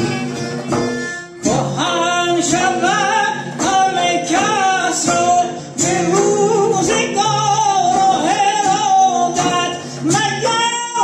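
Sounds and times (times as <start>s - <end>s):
man singing ornamented phrases: 1.4s - 11.0s.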